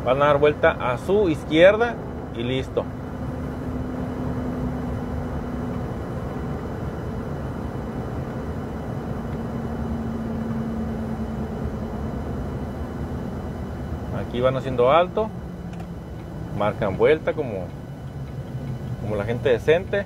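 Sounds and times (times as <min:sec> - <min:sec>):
faint steady hum: 0:00.0 - 0:20.0
tyre and engine rumble: 0:00.0 - 0:20.0.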